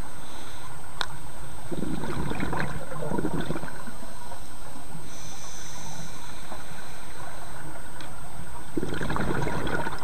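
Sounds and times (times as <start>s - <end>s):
low rumble of water: 0.7s - 10.0s
underwater bubbles gurgling: 1.7s - 4.4s, 7.3s - 10.0s.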